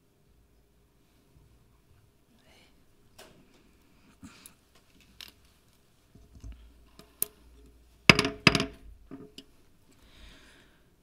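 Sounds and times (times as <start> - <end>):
gavel knocking: 8.1 - 9.3.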